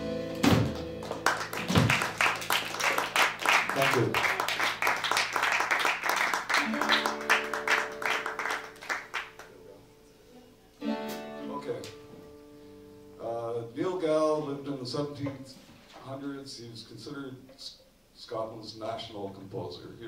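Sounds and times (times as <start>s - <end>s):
acoustic guitar chords: 0.0s - 2.7s, 6.4s - 13.8s
applause-like clatter: 0.4s - 9.5s.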